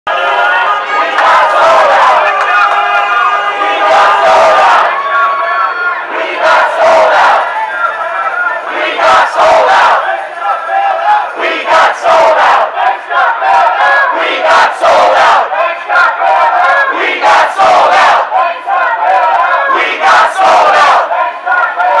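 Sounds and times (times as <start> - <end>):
crowd shouting slogans: 0.1 - 22.0.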